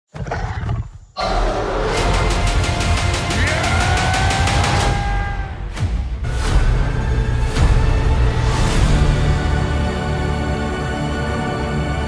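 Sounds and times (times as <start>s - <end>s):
gorilla growl: 0.1s - 2.1s.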